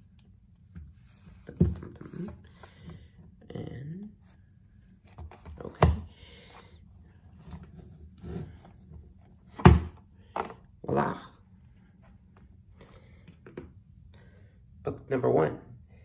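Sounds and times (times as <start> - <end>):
rustling and scraping: 0.0 - 3.4, 4.2 - 10.7.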